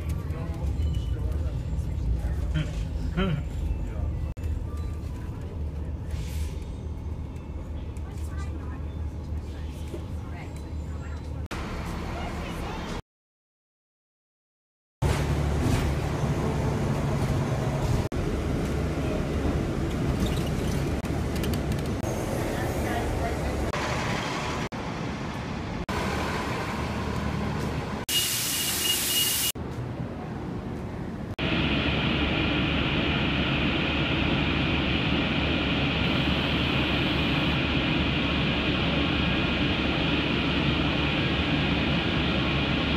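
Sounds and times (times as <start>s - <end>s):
train rumbling: 0.0s - 13.0s, 15.0s - 28.1s, 29.5s - 42.9s
buses idling: 15.2s - 29.5s, 30.4s - 42.9s.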